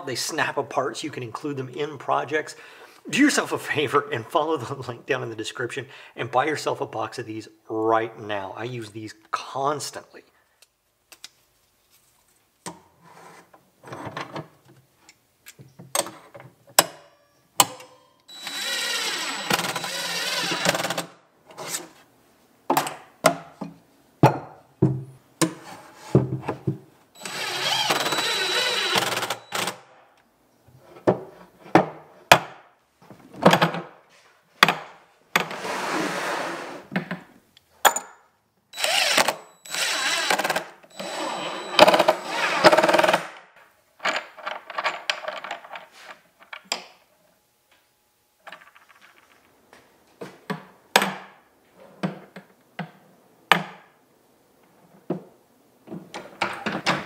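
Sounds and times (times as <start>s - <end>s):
power drill whining: 18.3s - 21.1s, 27.2s - 29.8s, 38.8s - 43.2s
clicks and knocks of parts: 44.0s - 47.0s, 48.4s - 49.5s.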